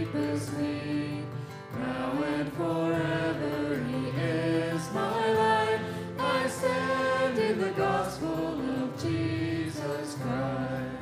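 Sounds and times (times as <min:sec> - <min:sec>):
instrumental accompaniment: 0:00.0 - 0:11.0
voices singing gospel song: 0:00.0 - 0:11.0.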